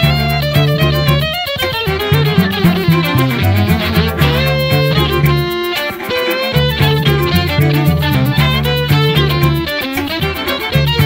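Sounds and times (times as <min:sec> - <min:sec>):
string quartet with flute: 0:00.0 - 0:11.0.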